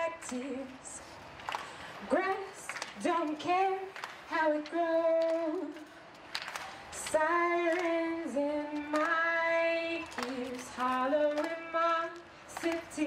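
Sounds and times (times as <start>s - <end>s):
woman singing unaccompanied: 0.0s - 1.0s, 2.0s - 5.9s, 7.0s - 13.0s.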